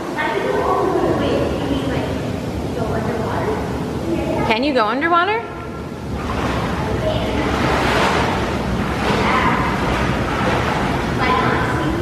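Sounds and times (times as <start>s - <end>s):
water rushing and churning: 0.0s - 12.0s.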